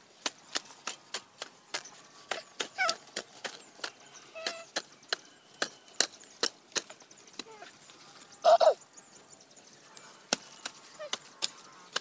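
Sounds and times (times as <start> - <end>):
hand hoe chopping dry soil: 0.0 - 7.6, 10.2 - 12.0.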